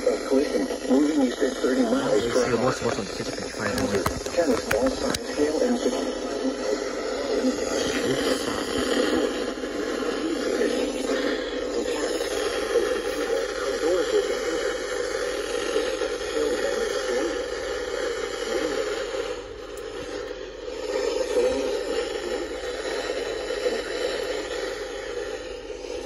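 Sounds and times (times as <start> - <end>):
voice over radio speaker: 0.0 - 19.2, 20.0 - 24.1
radio static hiss: 0.0 - 26.0.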